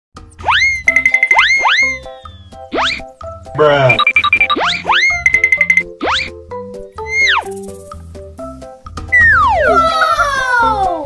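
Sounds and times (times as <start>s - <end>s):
playful children's music: 0.2s - 11.0s
cartoon boing swoops: 0.4s - 3.0s, 4.6s - 5.2s, 6.0s - 6.4s, 7.0s - 7.5s, 9.1s - 10.0s
fast warbling tone: 0.4s - 3.0s, 3.8s - 6.4s, 7.0s - 7.8s, 9.1s - 9.8s.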